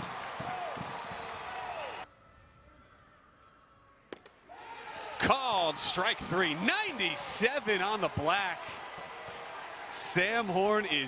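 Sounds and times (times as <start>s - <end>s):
ballpark crowd noise: 0.0s - 11.0s.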